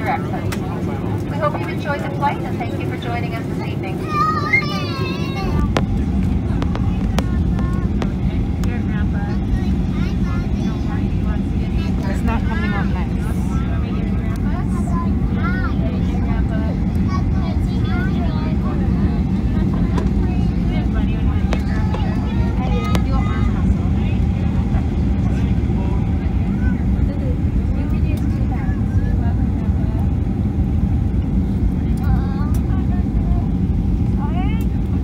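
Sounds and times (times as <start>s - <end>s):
faint passenger voices: 0.0s - 35.0s
jet engine and airflow rumble: 0.0s - 35.0s.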